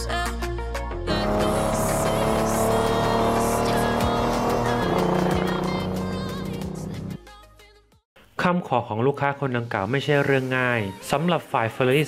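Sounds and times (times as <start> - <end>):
music: 0.0 - 12.0
race car engine revving: 1.1 - 7.2.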